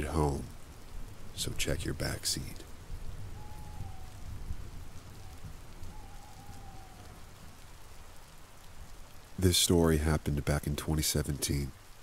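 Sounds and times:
steady rainfall: 0:00.0 - 0:12.0.

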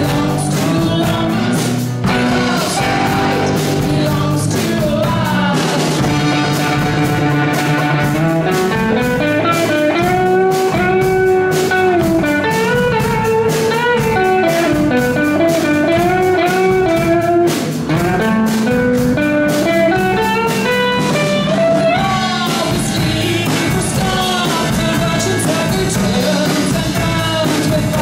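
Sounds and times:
electric guitar lead line: 0:00.0 - 0:28.0
rock band playing: 0:00.0 - 0:28.0.

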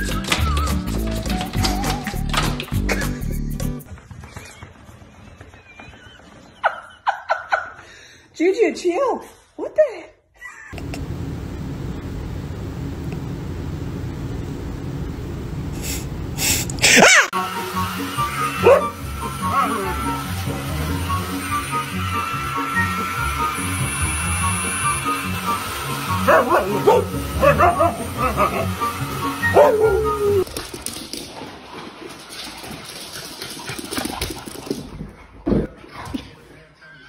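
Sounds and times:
husky whining calls: 0:18.3 - 0:20.3, 0:26.1 - 0:30.4.

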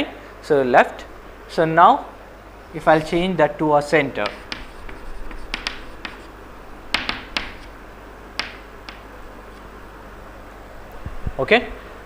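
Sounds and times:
chalk tapping on chalkboard: 0:04.2 - 0:06.3, 0:06.9 - 0:07.8, 0:08.4 - 0:09.1.

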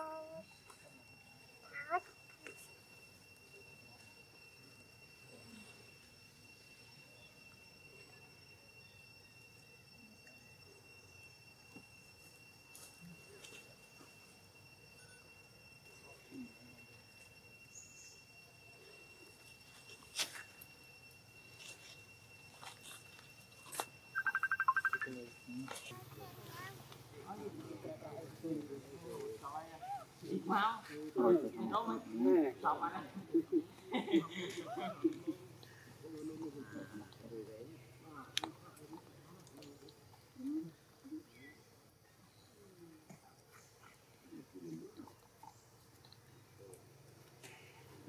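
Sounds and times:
high-pitched insect drone: 0:00.0 - 0:39.4
thin steady high tones: 0:00.0 - 0:48.0
monkey coo calls: 0:24.2 - 0:25.1, 0:29.6 - 0:30.5, 0:32.9 - 0:37.2.

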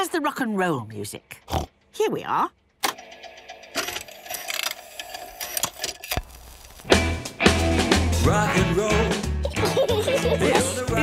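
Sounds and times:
jukebox mechanism whirring and clicking: 0:02.8 - 0:06.2
rock and roll song: 0:06.8 - 0:11.0.

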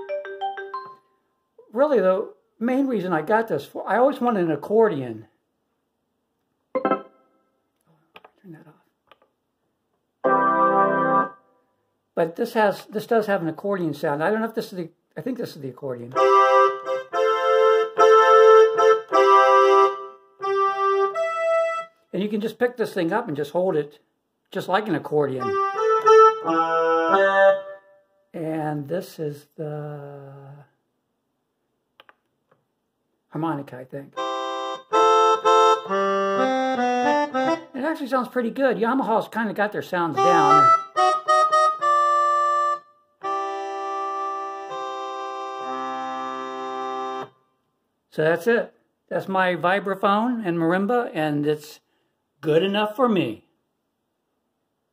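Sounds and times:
mini keyboard notes: 0:00.0 - 0:01.1, 0:06.8 - 0:07.2, 0:16.1 - 0:21.9, 0:25.4 - 0:27.9, 0:34.2 - 0:37.8, 0:40.2 - 0:47.4.

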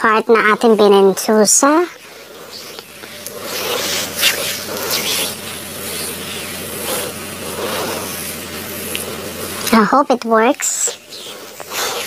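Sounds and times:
faint low hum: 0:00.0 - 0:12.0
hands rubbing oiled skin: 0:01.9 - 0:09.8, 0:10.7 - 0:12.0.

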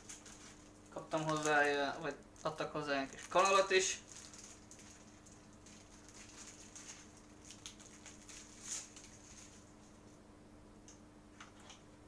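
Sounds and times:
plastic package rustling: 0:00.0 - 0:10.2
steady low hum: 0:00.0 - 0:12.0.

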